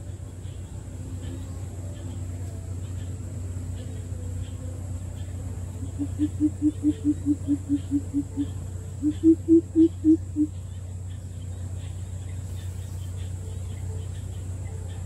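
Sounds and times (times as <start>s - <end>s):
steady low hum: 0.0s - 15.0s
bird deep hooting call: 2.7s - 10.6s.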